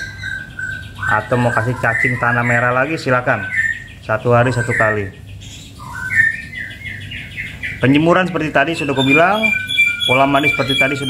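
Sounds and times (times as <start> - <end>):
songbird whistling: 0.0 - 11.0.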